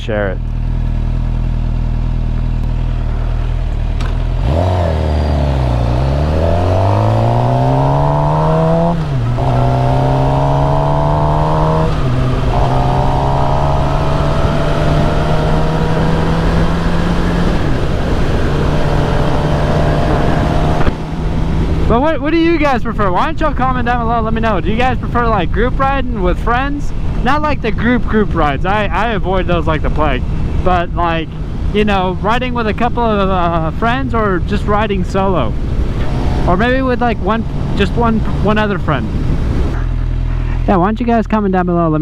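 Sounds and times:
motorcycle engine revving through gears: 0.4s - 21.9s, 35.5s - 40.5s.

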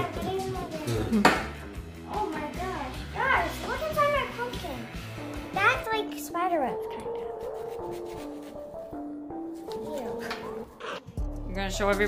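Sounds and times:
children talking and laughing: 0.0s - 4.9s
background music: 0.0s - 12.0s.

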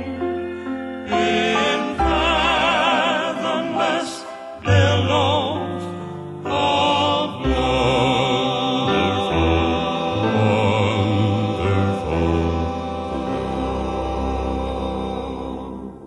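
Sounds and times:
male vocal group singing a hymn: 0.4s - 16.0s.

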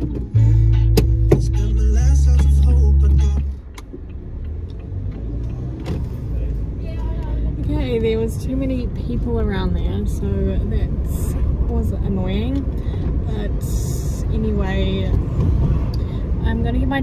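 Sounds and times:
car engine rumbling: 0.0s - 17.0s.

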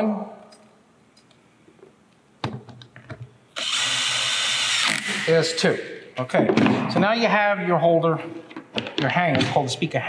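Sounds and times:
power drill driving screw into metal: 3.6s - 5.3s.

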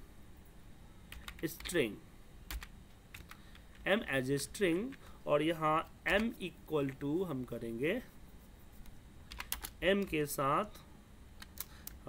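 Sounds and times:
computer keyboard typing clicks: 1.1s - 1.8s, 2.5s - 3.8s, 9.3s - 10.2s.

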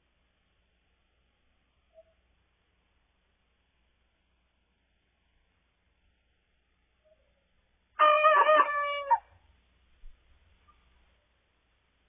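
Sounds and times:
rooster crowing: 8.0s - 9.3s.

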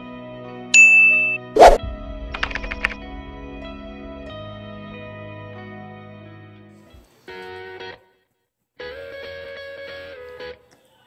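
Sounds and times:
bright ding: 0.8s - 1.6s
short loud hit: 1.5s - 6.5s.

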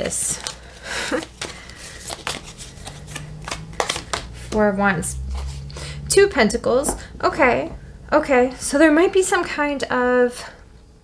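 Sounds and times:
cards clicking and sliding: 0.4s - 4.5s.

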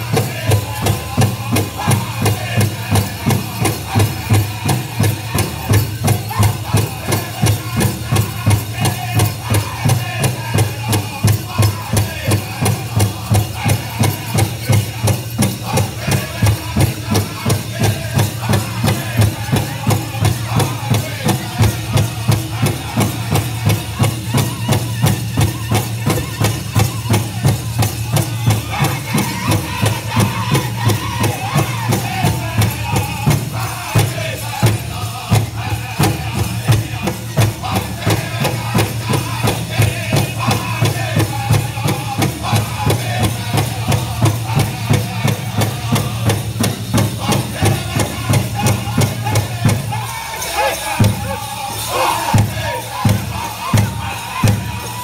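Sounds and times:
big drum beating: 0.0s - 55.0s
men singing with drum group: 0.0s - 55.0s.

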